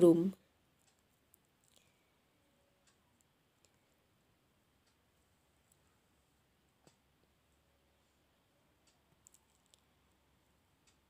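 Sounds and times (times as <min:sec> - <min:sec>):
small sharp clicks: 0:08.8 - 0:10.0.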